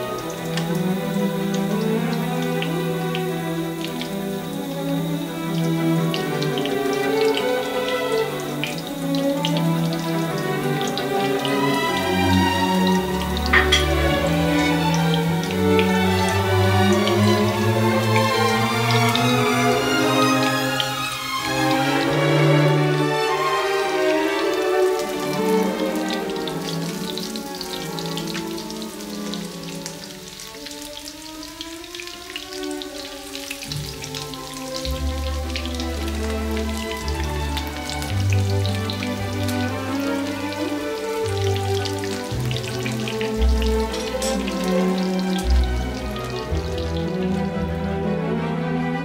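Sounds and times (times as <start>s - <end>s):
fish frying in hot oil: 0.0s - 48.0s
background music with held notes: 0.0s - 49.0s.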